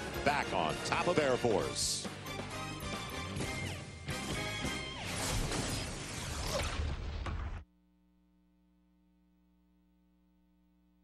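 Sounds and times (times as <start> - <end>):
broadcast music: 0.0 - 5.5.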